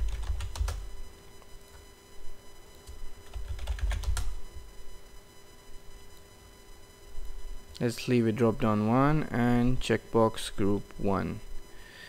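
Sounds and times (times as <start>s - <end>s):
computer keyboard typing: 0.0s - 0.9s, 2.9s - 4.4s.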